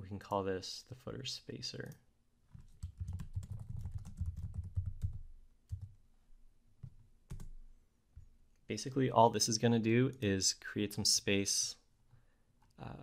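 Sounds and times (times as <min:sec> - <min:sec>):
typing on computer keyboard: 0:02.6 - 0:06.0, 0:06.8 - 0:07.6.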